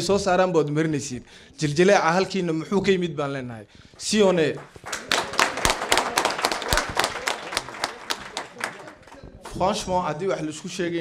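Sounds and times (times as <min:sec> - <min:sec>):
audience applauding: 0:04.3 - 0:09.6.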